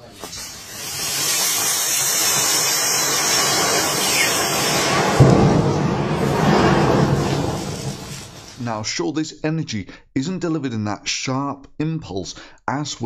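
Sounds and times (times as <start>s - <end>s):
gas hissing from battery: 0.0s - 5.4s
flame jet rushing: 0.0s - 8.7s.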